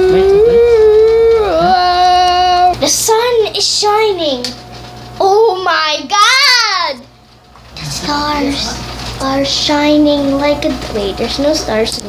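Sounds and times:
child singing: 0:00.0 - 0:04.5.

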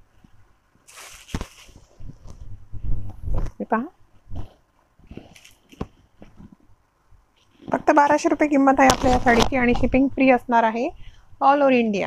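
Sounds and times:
silk fabric rustling: 0:00.8 - 0:03.6
fabric bumping microphone: 0:01.0 - 0:06.7, 0:07.6 - 0:10.0.

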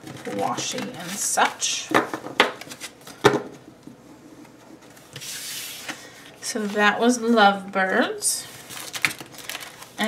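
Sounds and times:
paper rustling: 0:08.4 - 0:10.0.

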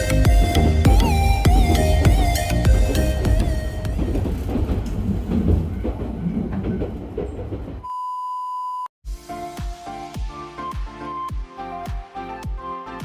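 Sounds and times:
vehicle ride rumble: 0:00.6 - 0:07.8
rattles inside vehicle: 0:00.8 - 0:07.8.

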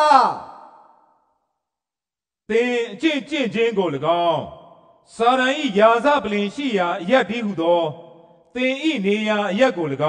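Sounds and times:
man reading aloud: 0:02.5 - 0:08.0, 0:08.6 - 0:10.0.

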